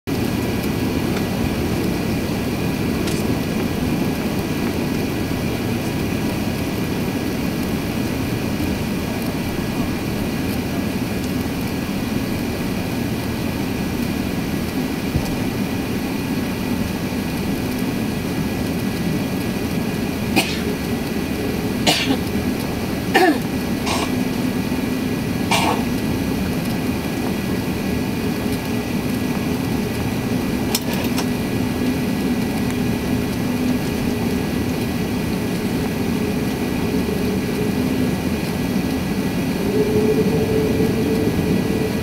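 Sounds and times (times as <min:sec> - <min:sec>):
airplane cabin rumble: 0:00.1 - 0:42.0
short sharp cough-like sound: 0:20.4 - 0:20.6, 0:25.5 - 0:25.8
faint steady high tones: 0:39.3 - 0:42.0.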